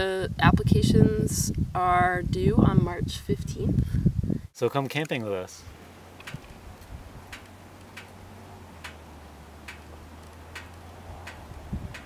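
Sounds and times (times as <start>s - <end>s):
quiet sharp ticks: 7.3s - 8.2s, 8.8s - 9.0s, 9.6s - 12.0s.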